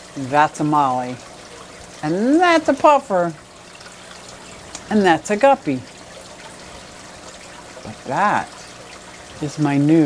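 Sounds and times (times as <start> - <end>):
water trickling: 0.0 - 10.0.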